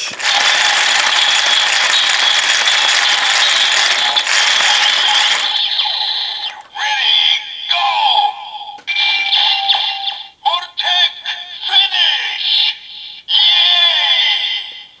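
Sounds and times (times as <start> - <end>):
toy charging whirr with whine: 0.0 - 6.7
recorded voice calling out: 6.7 - 15.0.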